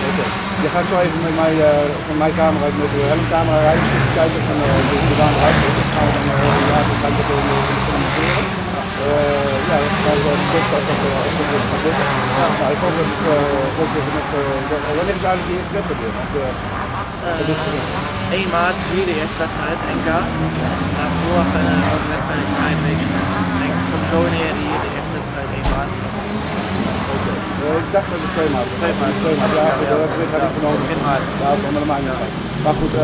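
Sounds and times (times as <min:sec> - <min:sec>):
person talking: 0:00.0 - 0:16.5, 0:21.0 - 0:26.0
motorcycle engines droning: 0:00.0 - 0:33.0.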